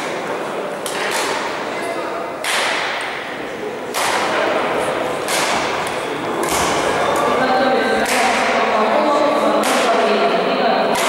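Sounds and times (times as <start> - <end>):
racket hitting shuttlecock: 0.8 - 1.8, 2.4 - 7.3, 8.0 - 8.6, 9.6 - 10.0.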